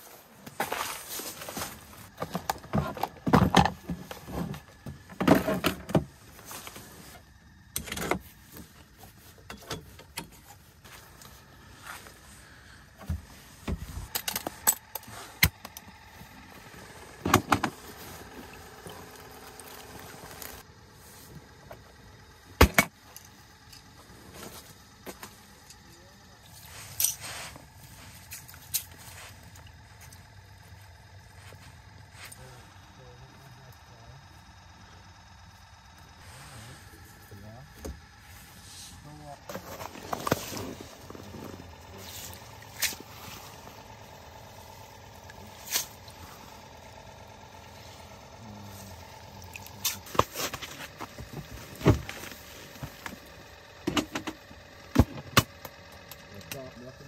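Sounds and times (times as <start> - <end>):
cooler being opened: 0.6 - 6.2.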